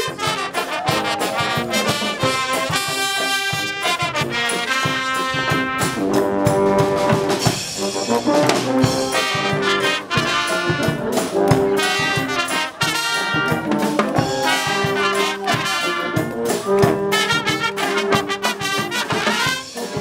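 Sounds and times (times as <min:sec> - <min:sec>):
drum kit steady beat: 0:00.0 - 0:20.0
trombones: 0:00.0 - 0:20.0.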